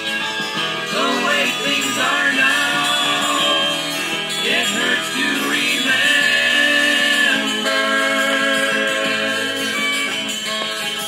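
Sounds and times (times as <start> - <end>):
folk song from vinyl record: 0.0 - 11.0.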